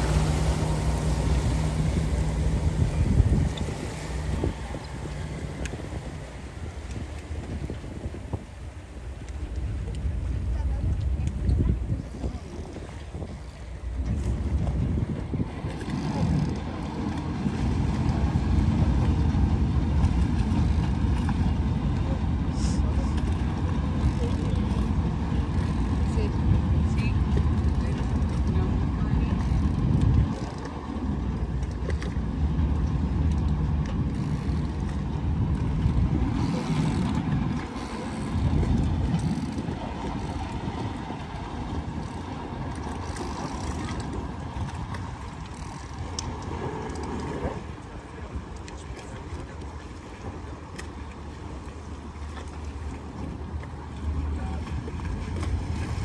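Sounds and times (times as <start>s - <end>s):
boat engine running: 0.0s - 56.0s
wind rumbling on microphone: 0.0s - 56.0s.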